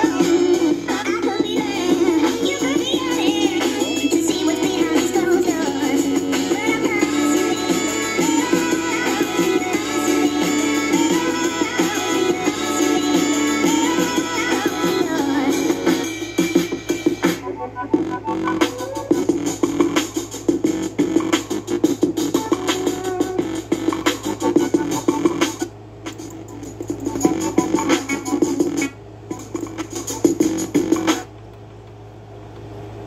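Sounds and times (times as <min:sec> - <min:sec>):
music with a steady beat: 0:00.0 - 0:31.3.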